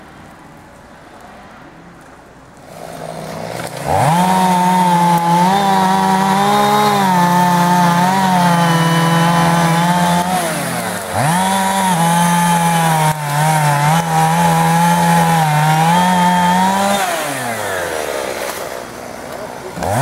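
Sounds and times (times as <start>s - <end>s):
chainsaw revving: 2.7s - 20.0s.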